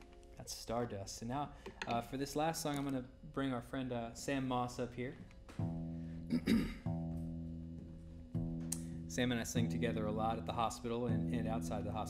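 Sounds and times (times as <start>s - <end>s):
acoustic guitar strings plucked: 5.5s - 12.0s.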